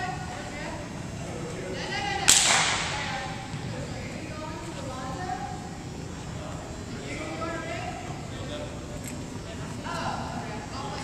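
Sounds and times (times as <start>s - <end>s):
faint background chatter: 0.0s - 11.0s
sharp slap ringing in hall: 2.3s - 3.0s.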